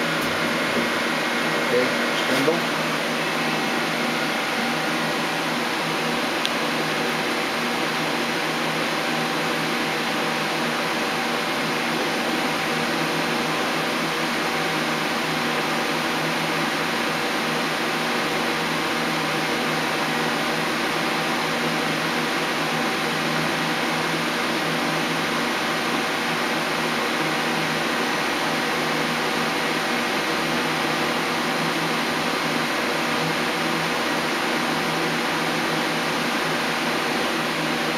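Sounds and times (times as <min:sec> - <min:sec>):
lathe humming and whining: 0:00.0 - 0:37.9.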